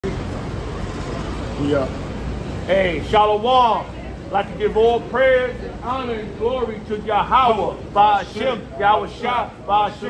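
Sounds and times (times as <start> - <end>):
low traffic hum: 0.0 - 10.0.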